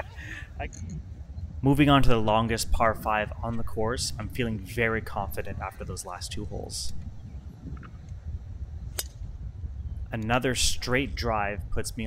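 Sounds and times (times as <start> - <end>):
wind on microphone: 0.0 - 12.0
golf club striking ball: 8.9 - 9.3.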